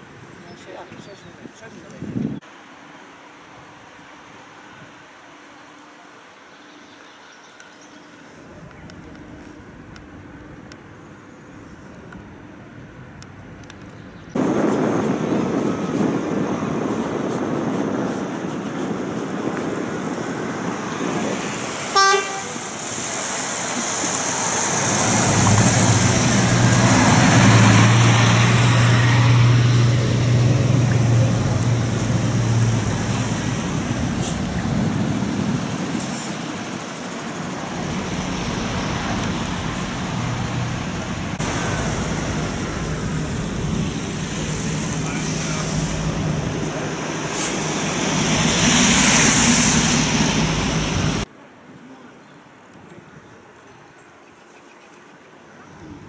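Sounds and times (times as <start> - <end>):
vehicle engine passing: 19.8 - 51.3
vehicle horn toot: 21.9 - 22.8.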